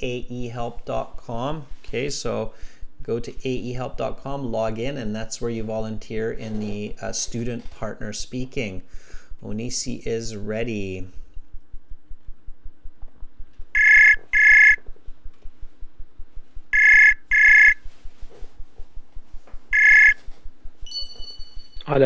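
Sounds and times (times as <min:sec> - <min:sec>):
thin high tone: 0:13.8 - 0:14.8, 0:16.7 - 0:17.8, 0:19.7 - 0:20.2, 0:20.8 - 0:22.0
voice call ringing: 0:13.8 - 0:14.8, 0:16.8 - 0:17.8, 0:19.7 - 0:20.2.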